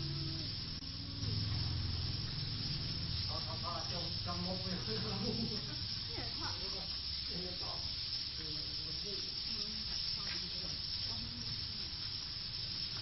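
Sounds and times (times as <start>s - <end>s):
flock of birds twittering: 0.0s - 13.0s.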